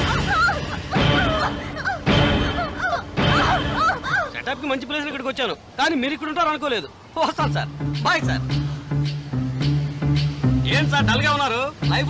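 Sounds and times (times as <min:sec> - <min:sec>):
film music: 0:00.0 - 0:04.4, 0:07.2 - 0:12.0
high whimpering cries: 0:00.2 - 0:04.6.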